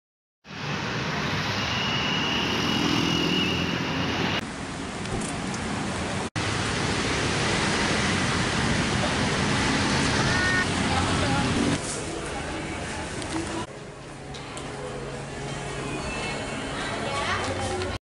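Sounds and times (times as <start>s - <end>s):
road traffic hiss and rumble: 0.4s - 18.0s.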